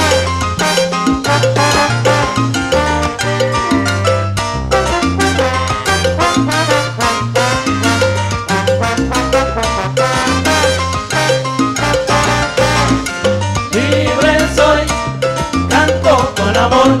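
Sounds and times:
brass section: 0.0 - 13.3
live salsa band playing: 0.0 - 17.0.

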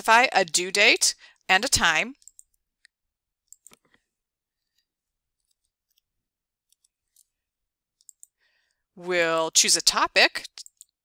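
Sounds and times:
computer mouse clicks: 2.2 - 2.9, 3.5 - 4.0, 8.0 - 8.4, 10.6 - 11.0
keyboard typing: 2.2 - 4.0, 8.0 - 8.4, 10.6 - 11.0
faint breath: 8.4 - 8.9.

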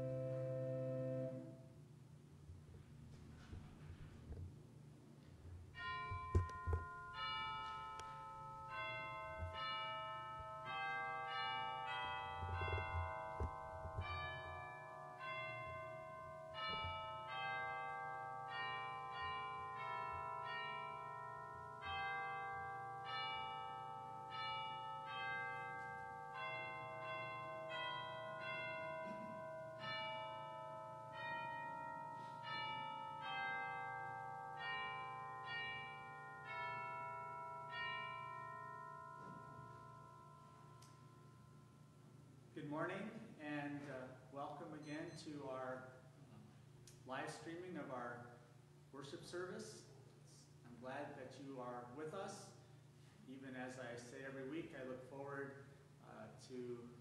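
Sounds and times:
bells playing slow melody: 0.0 - 1.6, 5.7 - 46.2.

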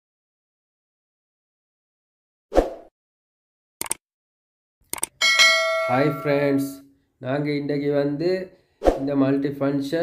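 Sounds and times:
notification bell chime: 5.2 - 6.8.

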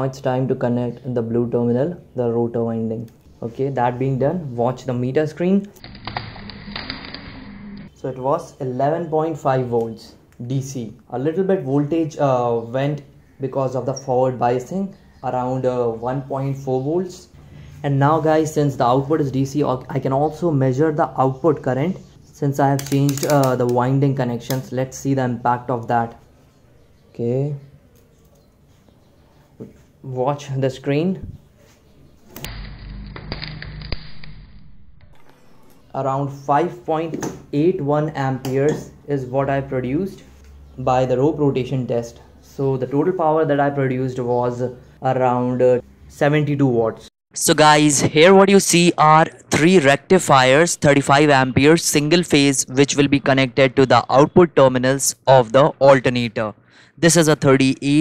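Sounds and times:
alternator low whir: 5.9 - 7.9
sharp clicks: 22.7 - 23.8.

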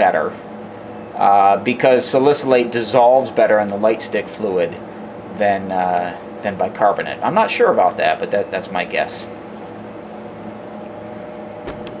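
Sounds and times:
room hum with faint tone: 0.0 - 12.0.

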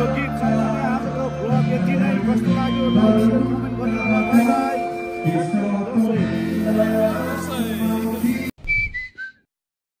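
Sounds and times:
live band music: 0.0 - 8.6.

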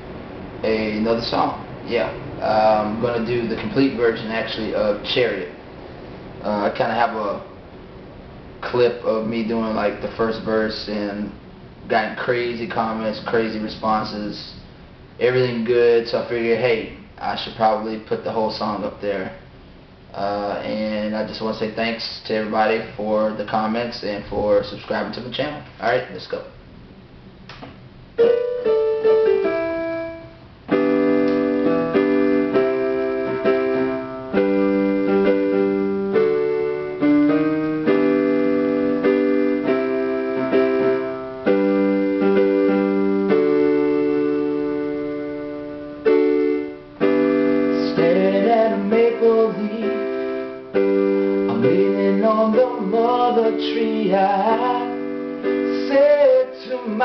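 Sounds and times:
piano chords on keyboard: 0.0 - 14.4, 27.9 - 57.0
man singing: 47.8 - 50.2, 51.5 - 55.0, 55.6 - 57.0.

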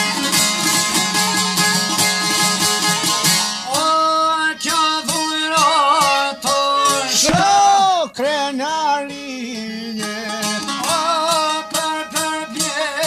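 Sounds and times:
plucked long-necked lute: 0.0 - 13.0
man singing: 3.6 - 13.0.

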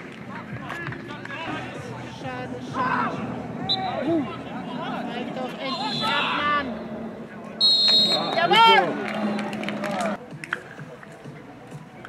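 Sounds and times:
referee whistle: 3.6 - 4.1, 5.6 - 6.5, 7.6 - 8.6.

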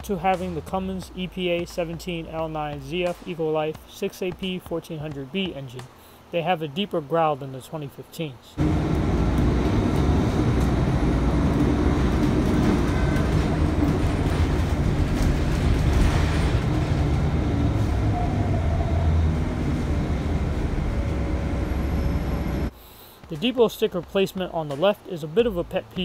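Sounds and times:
bus diesel engine growl: 8.6 - 22.7
road noise: 8.6 - 26.0.

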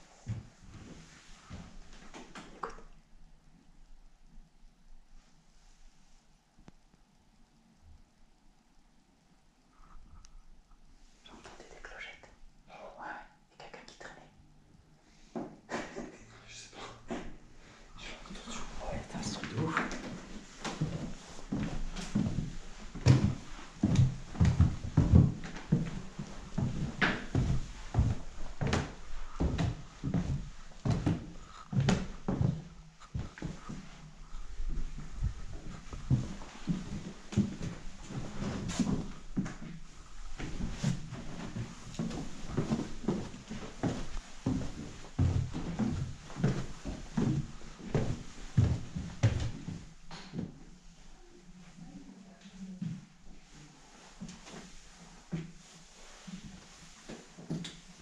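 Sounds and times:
footsteps on wooden stairs: 19.4 - 50.5.

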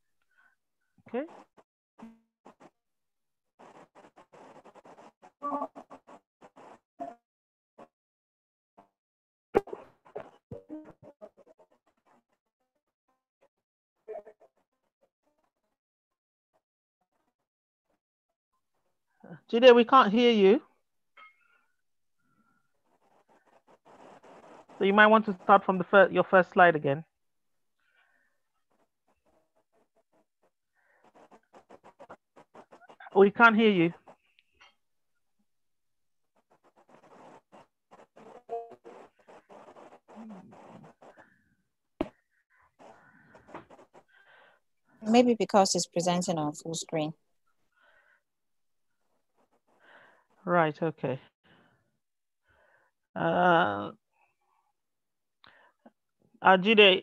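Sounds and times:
choppy voice over video call: 19.3 - 20.6, 24.8 - 27.0, 33.0 - 34.0, 45.0 - 47.1, 50.5 - 51.2, 53.2 - 53.9, 56.4 - 57.0
garbled broken-up speech: 24.8 - 27.0, 33.0 - 33.9, 45.0 - 47.1.

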